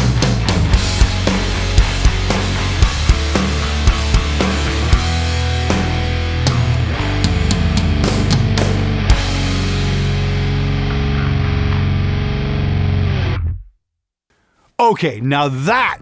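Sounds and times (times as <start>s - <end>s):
drums: 0.0s - 13.4s
bass guitar: 0.0s - 13.7s
distorted electric guitar: 0.0s - 13.7s.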